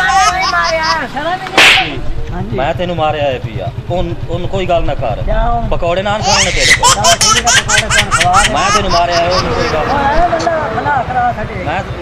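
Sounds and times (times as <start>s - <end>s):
person speaking: 6.3s - 10.6s.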